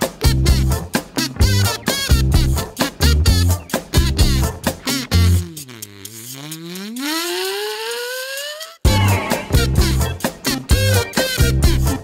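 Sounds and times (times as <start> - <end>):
upbeat music with strong beat: 0.0 - 5.8, 6.6 - 12.0
rising pitched tone: 5.0 - 9.2.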